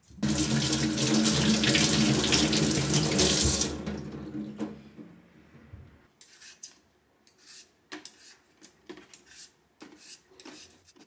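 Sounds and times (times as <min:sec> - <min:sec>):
tap running into steel sink: 0:00.2 - 0:05.1.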